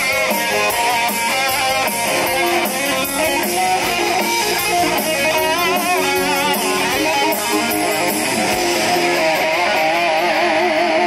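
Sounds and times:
drums and cymbals: 0.0 - 11.0
electric guitar lead: 0.0 - 11.0.

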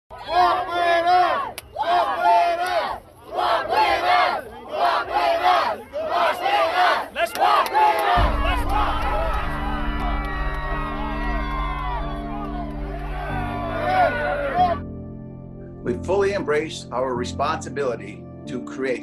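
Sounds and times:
crowd chanting in unison: 0.1 - 10.3
deep bass music tone: 8.2 - 17.4.

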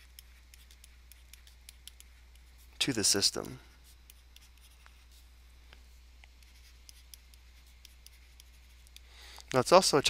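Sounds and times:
stylus tapping on pen tablet: 0.0 - 2.6, 3.4 - 5.0, 6.2 - 9.1
low electrical hum: 0.0 - 10.0.

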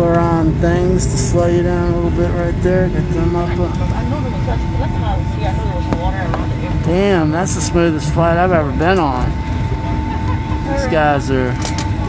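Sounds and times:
engine and wheel rumble: 0.0 - 12.0
faint voices: 0.0 - 12.0
steady whining tone: 0.0 - 12.0.

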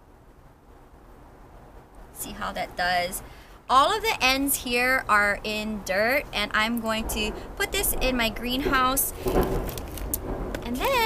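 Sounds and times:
low background rumble: 0.0 - 11.0
woman speaking: 2.2 - 9.2, 10.6 - 11.0
plant cuttings rustling: 9.2 - 11.0.

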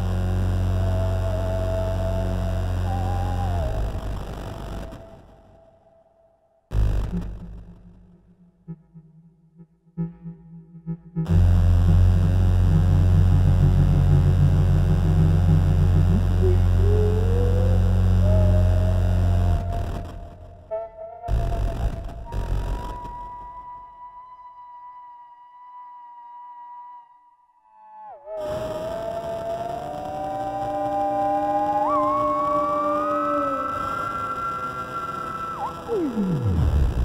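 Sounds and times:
theremin sliding melody: 0.0 - 5.5, 10.0 - 37.0
steady low drone: 0.0 - 5.8, 6.7 - 23.7.

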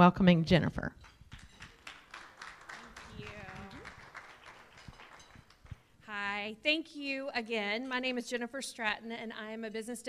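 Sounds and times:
light scattered applause: 1.3 - 5.9.

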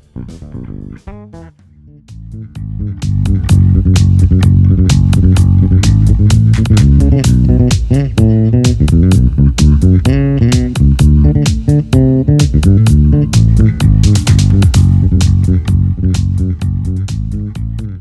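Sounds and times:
bass guitar funk riff: 0.0 - 18.0.

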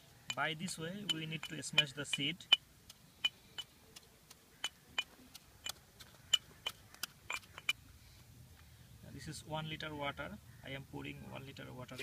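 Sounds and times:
pestle pounding in a mortar: 0.6 - 2.6.

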